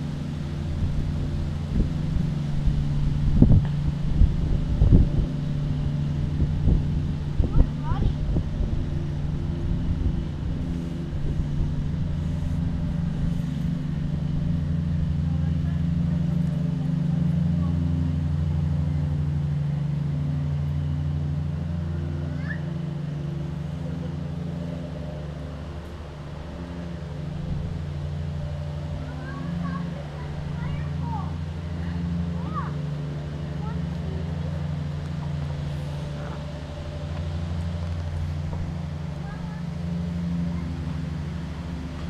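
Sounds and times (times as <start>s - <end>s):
vehicle engine idling: 0.0s - 42.0s.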